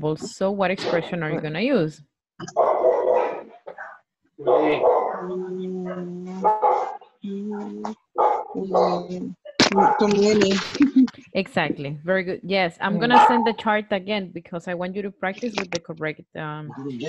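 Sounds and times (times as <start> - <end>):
person speaking over video call: 0.0 - 8.0, 8.6 - 17.0.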